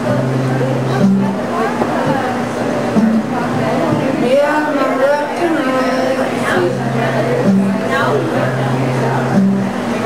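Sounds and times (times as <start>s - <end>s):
acoustic guitar playing: 0.0s - 10.0s
people talking: 0.0s - 10.0s.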